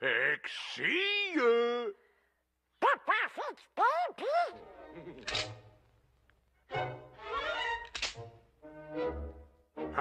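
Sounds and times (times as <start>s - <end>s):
orchestral cartoon music: 6.6s - 10.0s.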